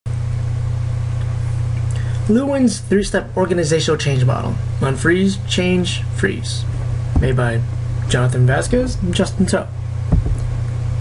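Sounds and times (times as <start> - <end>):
loud steady low hum: 0.1 - 11.0.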